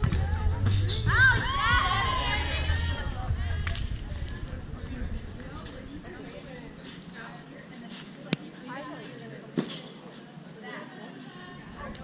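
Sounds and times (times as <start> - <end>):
high shout: 1.1 - 3.2.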